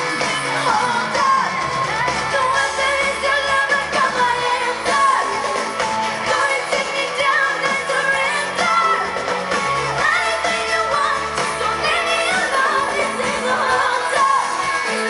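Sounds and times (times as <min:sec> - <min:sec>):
band playing through concert pa: 0:00.0 - 0:15.0
woman singing pop: 0:00.0 - 0:15.0.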